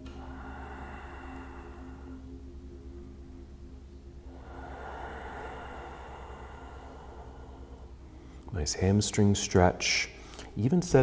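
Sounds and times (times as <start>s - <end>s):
low steady hum: 0.0s - 11.0s
soft background music: 0.0s - 11.0s
soft hiss: 0.0s - 11.0s.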